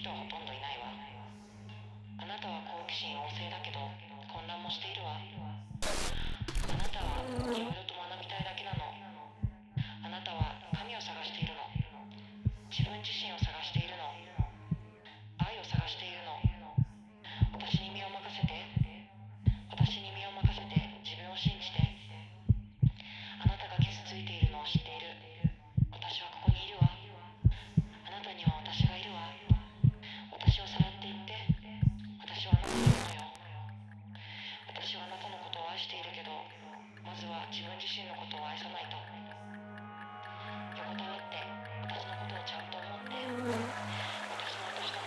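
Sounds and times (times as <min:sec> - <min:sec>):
regular low thumps: 0:22.5 - 0:23.0, 0:32.6 - 0:33.3
steady low hum: 0:26.5 - 0:33.4.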